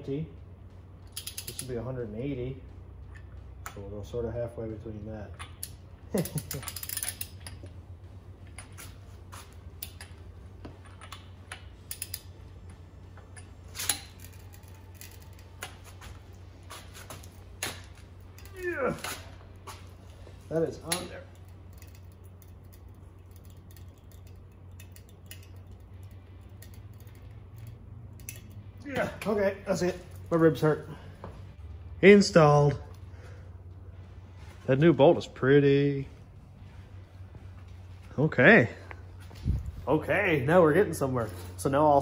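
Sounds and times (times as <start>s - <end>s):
low hum: 0.0s - 42.0s
torque wrench clicking: 1.0s - 1.8s, 5.4s - 7.7s, 9.8s - 10.2s, 10.9s - 15.8s, 20.8s - 28.6s
man grunting: 18.5s - 19.2s.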